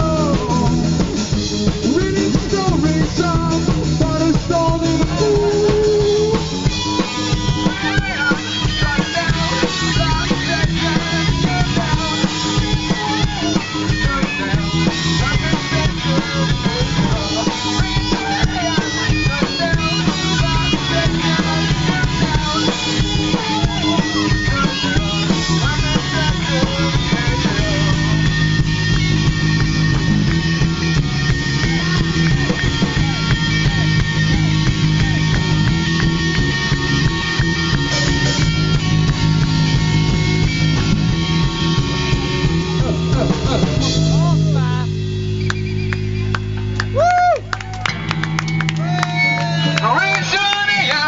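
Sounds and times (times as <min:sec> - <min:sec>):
singer calling out: 0:00.0 - 0:01.1, 0:01.7 - 0:29.1, 0:42.2 - 0:45.0
live rock band playing: 0:00.0 - 0:51.0
voice shouting through megaphone: 0:07.6 - 0:09.4.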